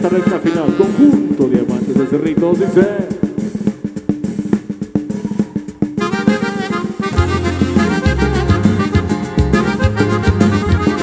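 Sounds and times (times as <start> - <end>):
bass note: 6.1 - 11.0.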